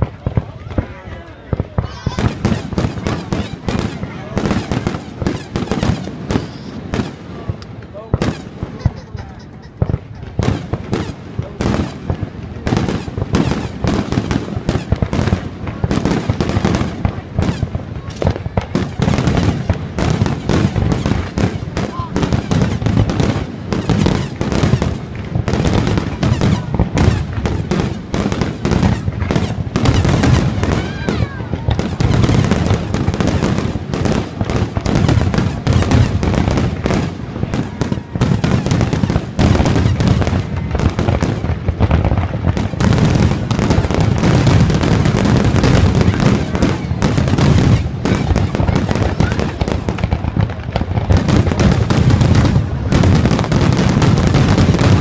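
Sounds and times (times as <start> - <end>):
fireworks bangs and crackles: 0.0 - 55.0.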